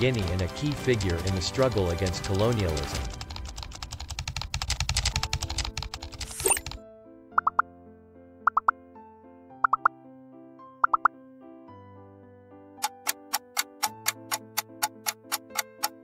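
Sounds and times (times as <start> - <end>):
typewriter keystroke clicks: 0.0 - 6.8, 12.8 - 16.0
soft quiz background music: 0.0 - 7.8, 8.4 - 8.9, 9.6 - 10.1, 10.7 - 11.2, 12.8 - 16.0.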